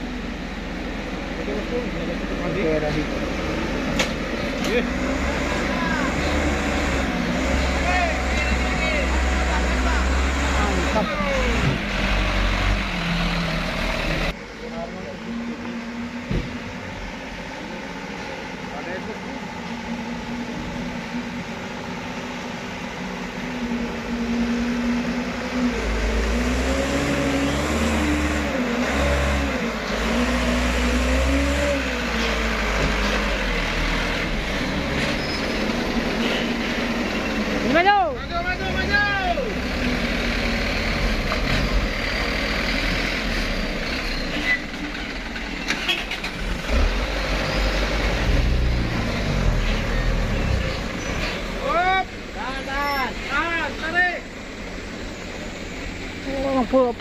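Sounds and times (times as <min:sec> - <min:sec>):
truck engine running under load: 0:00.0 - 0:57.0.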